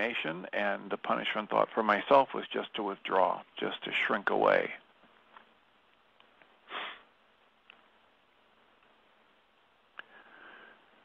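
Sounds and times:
man sniffing: 0:06.7 - 0:07.1.

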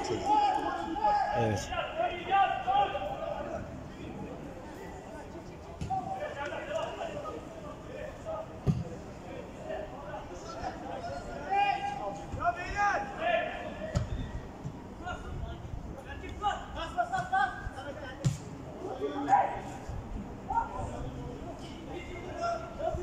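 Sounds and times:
football being kicked: 0:08.6 - 0:08.9.

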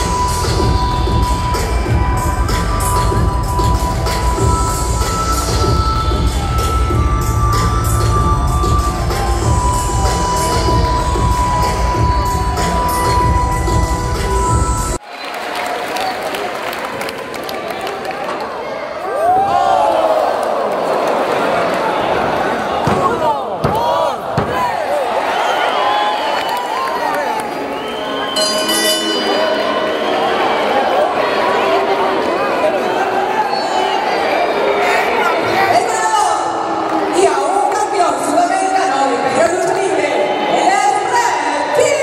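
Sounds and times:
heavy bass: 0:00.0 - 0:15.0
music over pa speakers: 0:00.0 - 0:15.0
crowd shouting: 0:18.6 - 0:37.3
held high synth tone: 0:28.1 - 0:31.2.

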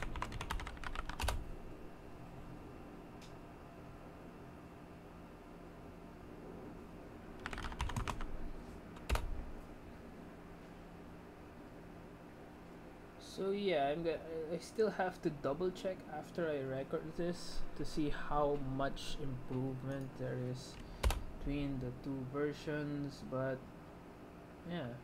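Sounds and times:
keyboard typing: 0:00.0 - 0:01.4, 0:07.4 - 0:08.3, 0:09.0 - 0:09.3, 0:21.0 - 0:21.2
faint steady hum: 0:00.0 - 0:25.0.

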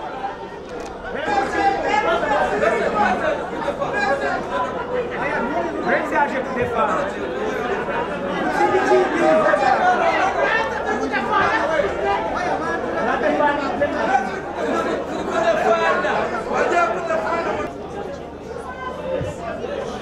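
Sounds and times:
crowd chattering: 0:00.0 - 0:20.0.

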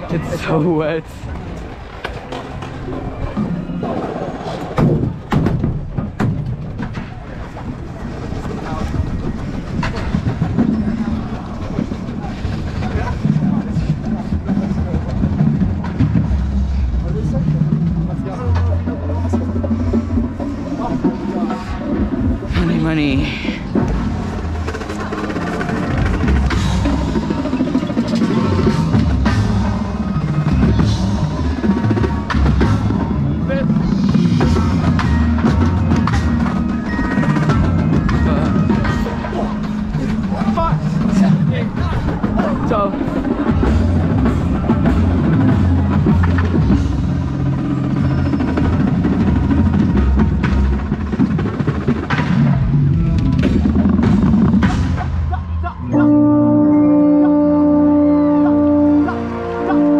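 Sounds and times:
drums playing: 0:09.2 - 0:59.9.

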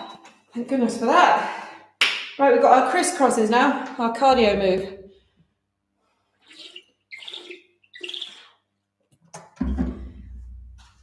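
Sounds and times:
gulping from water bottle: 0:06.4 - 0:08.7.

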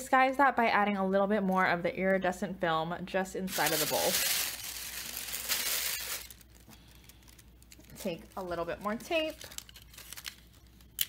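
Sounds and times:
plastic film crinkling: 0:03.5 - 0:11.0.

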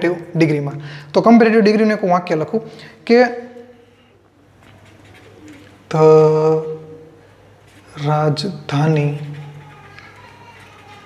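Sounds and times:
pen scratching on paper: 0:04.6 - 0:05.9, 0:08.7 - 0:11.0.

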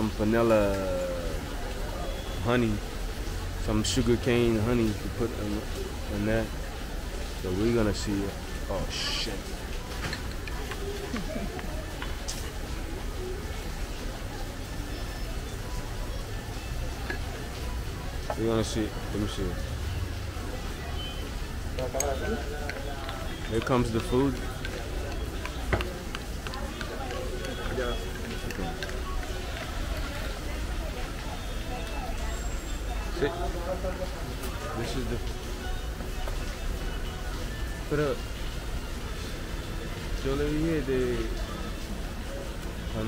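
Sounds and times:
faint voices: 0:00.0 - 0:43.0.

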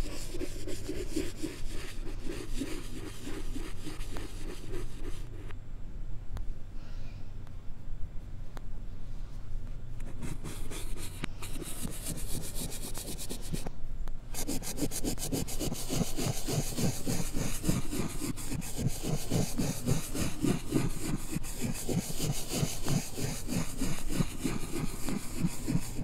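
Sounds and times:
reversed chalk rubbing on blackboard: 0:00.0 - 0:05.5, 0:10.0 - 0:13.7, 0:14.3 - 0:26.0.

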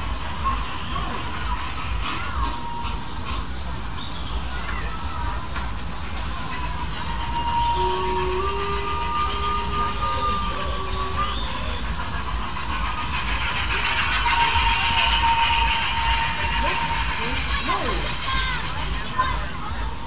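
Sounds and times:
people chattering: 0:00.0 - 0:20.0
thin high tone: 0:06.5 - 0:19.5.

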